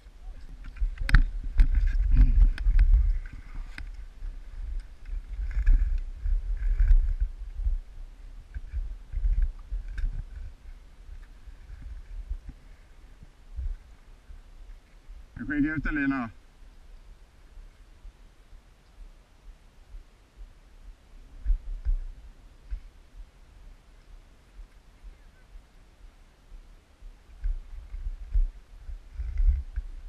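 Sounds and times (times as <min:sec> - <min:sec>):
wind rumble on microphone: 0:00.0 - 0:30.0.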